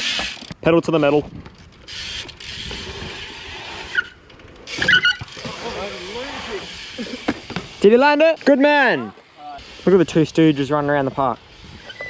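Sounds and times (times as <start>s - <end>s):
bike tyres rolling on concrete: 0.0s - 12.0s.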